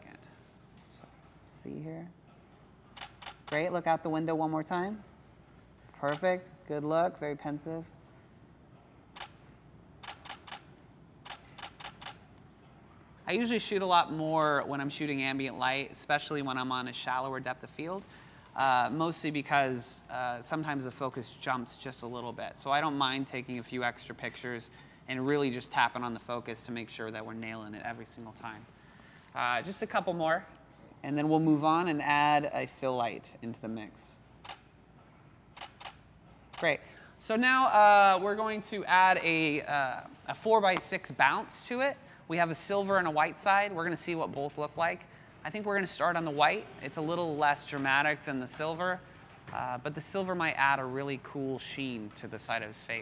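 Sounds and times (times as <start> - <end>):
camera shutter firing: 10.0 - 12.2, 35.5 - 36.7
camera shutter clicks: 35.6 - 36.7.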